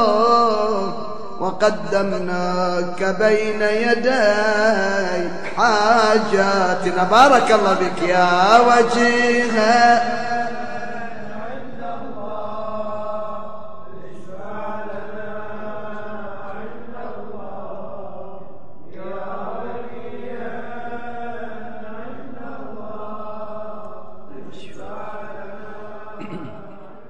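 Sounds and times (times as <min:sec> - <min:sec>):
melodic vocal chant: 0:00.0 - 0:27.0.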